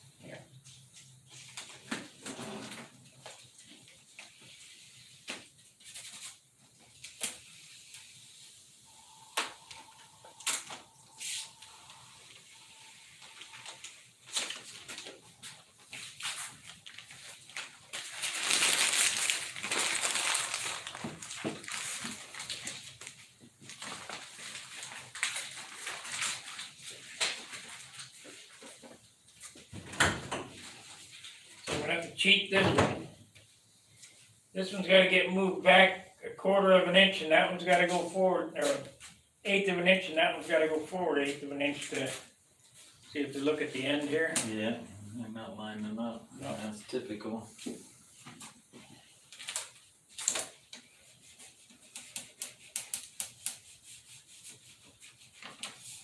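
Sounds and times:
faint steady tone: 0:08.0 - 0:14.1
rustling tearing noise: 0:13.2 - 0:28.4, 0:49.2 - 0:56.0
masking tape pulled and pressed: 0:49.4 - 0:55.8.

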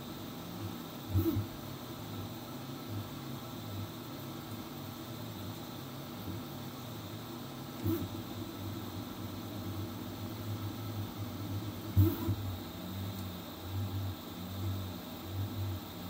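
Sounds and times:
stepper motors humming in pulses: 0:00.0 - 0:16.0.

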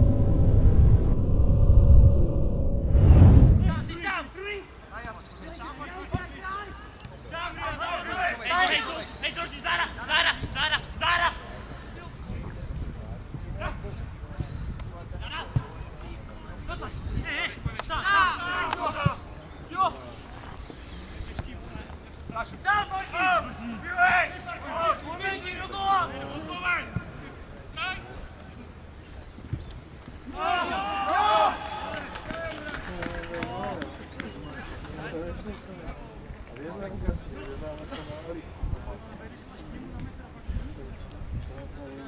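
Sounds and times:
wind on microphone: 0:00.0 - 0:04.0, 0:12.1 - 0:17.8
people shouting together: 0:30.3 - 0:31.8.

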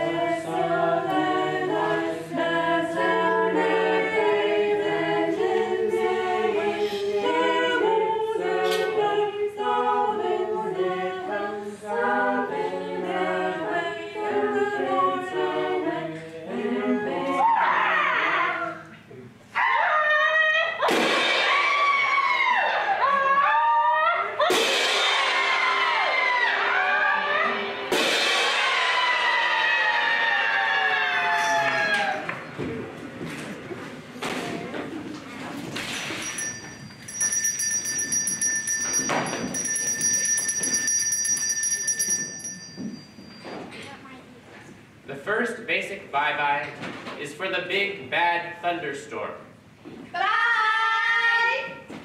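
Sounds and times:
hand cymbals crashing: 0:36.2 - 0:43.1.

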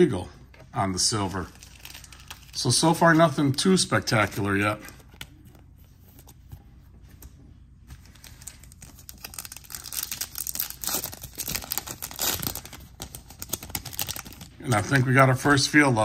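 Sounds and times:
card pack wrapper crinkling and tearing: 0:01.5 - 0:03.2, 0:08.1 - 0:15.6.

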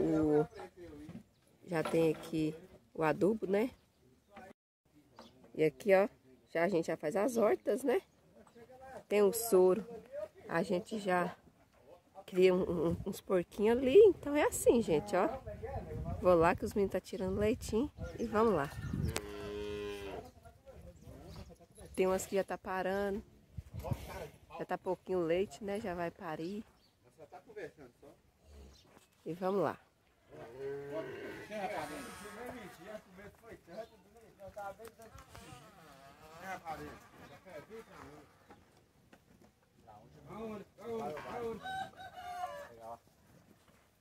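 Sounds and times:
cow mooing: 0:19.1 - 0:20.2, 0:30.3 - 0:33.0
rooster crowing: 0:41.5 - 0:42.8.

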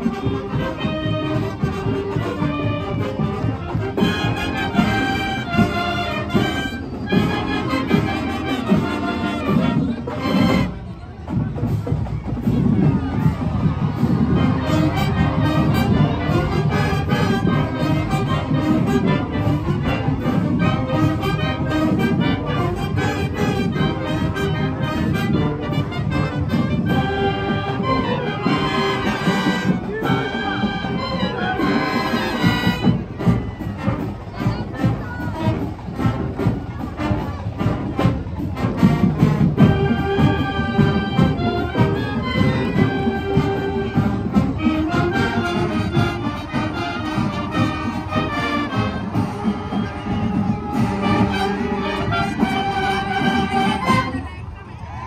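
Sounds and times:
trombones: 0:00.0 - 0:11.0, 0:12.4 - 0:54.4
flutes: 0:00.0 - 0:55.0
trumpets: 0:00.0 - 0:55.0.

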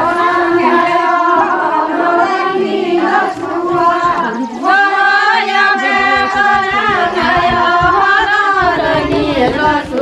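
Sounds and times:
low repeating beat: 0:03.6 - 0:10.0.

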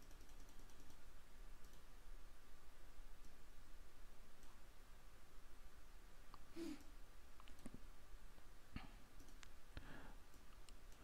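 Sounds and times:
computer mouse clicks: 0:00.0 - 0:01.9, 0:04.3 - 0:04.6, 0:06.3 - 0:07.8, 0:09.2 - 0:09.6, 0:10.2 - 0:11.0.

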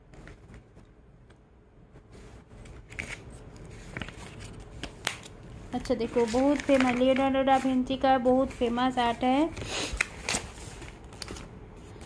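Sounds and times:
paper sheets rustling: 0:02.0 - 0:12.0.

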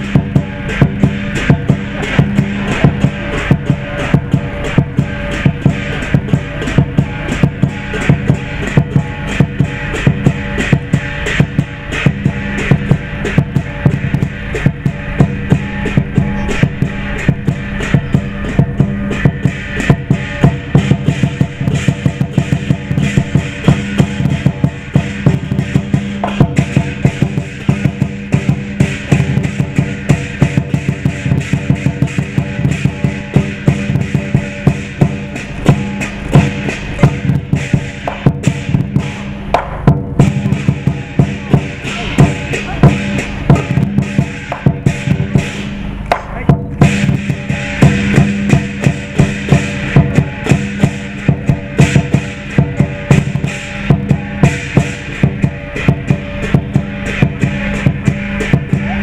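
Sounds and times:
cymbals and gong crashing: 0:00.0 - 0:59.0
large drum beating fast: 0:00.0 - 0:59.0.

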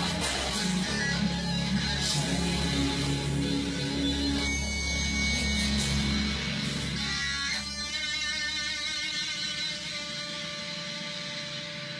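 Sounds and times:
electric guitar chord ringing: 0:00.0 - 0:11.9.

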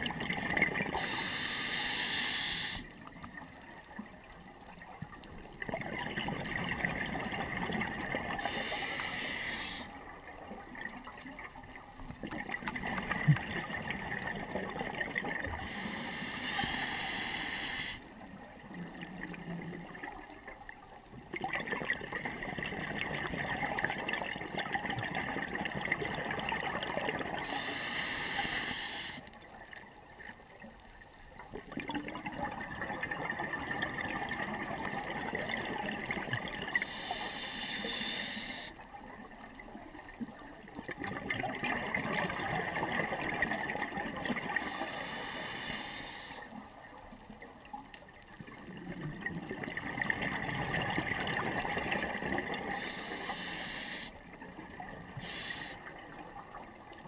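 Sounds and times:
hissing regulator inhalations: 0:01.0 - 0:02.9, 0:08.4 - 0:09.9, 0:15.6 - 0:18.0, 0:27.4 - 0:29.3, 0:36.8 - 0:38.8, 0:44.6 - 0:46.5, 0:52.6 - 0:54.2, 0:55.2 - 0:55.9.

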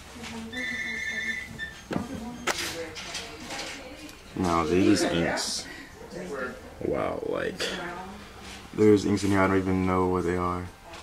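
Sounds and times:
low indistinct voices: 0:00.0 - 0:11.0
high-pitched tone: 0:00.5 - 0:01.8.

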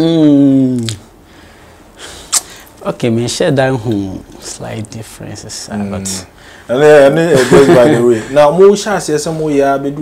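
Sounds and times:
man speaking: 0:02.8 - 0:10.0.

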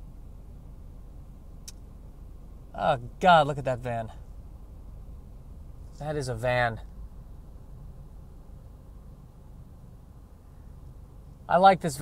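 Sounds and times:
faint high tick: 0:01.6 - 0:01.9.

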